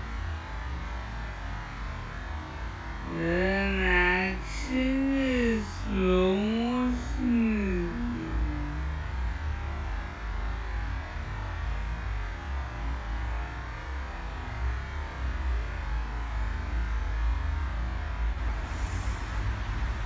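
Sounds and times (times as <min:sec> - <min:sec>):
faint hiss: 0:18.6 - 0:19.6.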